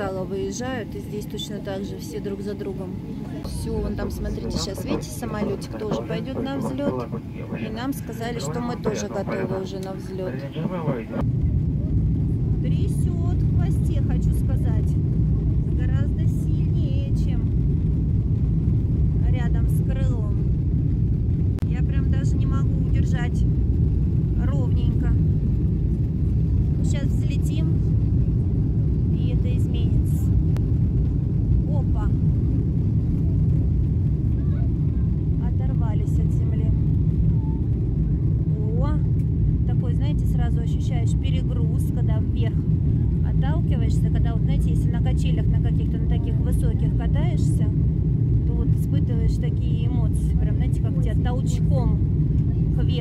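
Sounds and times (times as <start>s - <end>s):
faint voices: 0.0s - 17.6s, 32.8s - 39.0s
jet engines rumbling: 0.0s - 53.0s.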